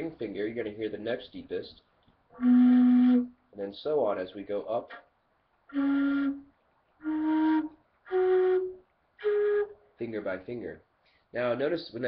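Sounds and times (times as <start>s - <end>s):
end-blown flute held notes: 2.4s - 3.3s, 5.7s - 9.8s.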